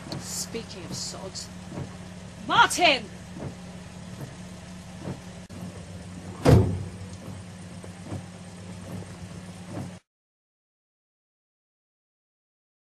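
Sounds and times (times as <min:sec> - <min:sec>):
car engine idling: 0:00.0 - 0:10.0
loud thump: 0:06.3 - 0:07.4.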